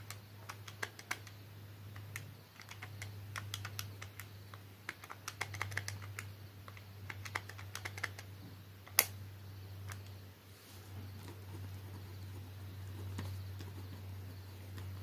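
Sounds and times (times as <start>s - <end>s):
calculator key clicks: 0.0s - 9.2s
faint low hum: 0.0s - 15.0s.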